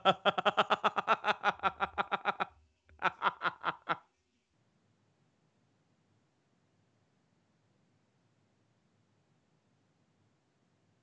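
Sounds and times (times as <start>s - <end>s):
man laughing in quick pulses: 0.0s - 4.1s.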